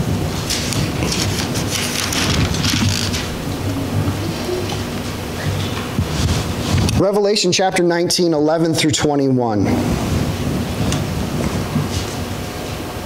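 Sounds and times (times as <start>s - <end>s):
book pages rustling: 0.5s - 3.4s.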